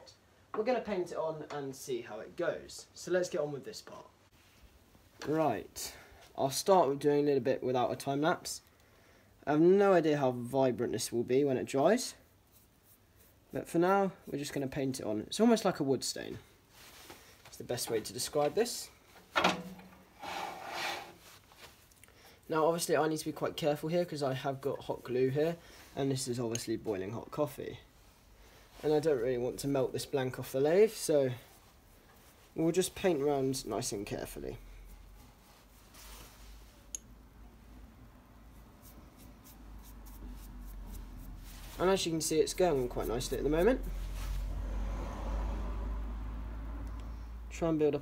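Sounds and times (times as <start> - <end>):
paintbrush scratching on wood: 12.0 - 14.6, 28.8 - 36.4, 38.5 - 44.7.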